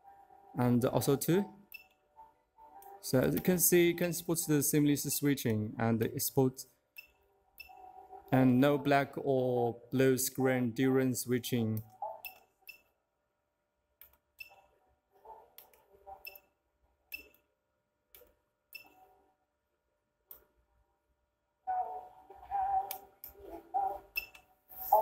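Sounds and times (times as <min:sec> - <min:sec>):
music over a speaker: 0:21.7 - 0:25.0.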